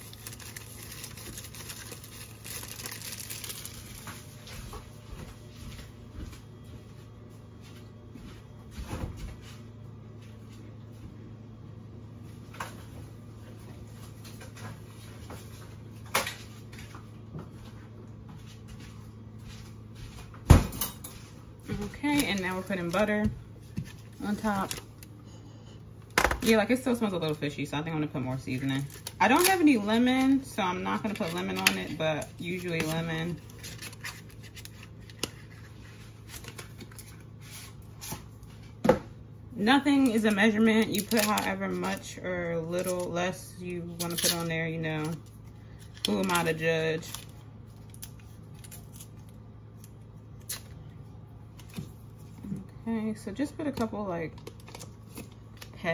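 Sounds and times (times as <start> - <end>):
woman speaking: 21.7 - 23.4, 24.2 - 24.8, 26.4 - 33.4, 39.5 - 45.2, 46.1 - 47.2, 52.4 - 54.4.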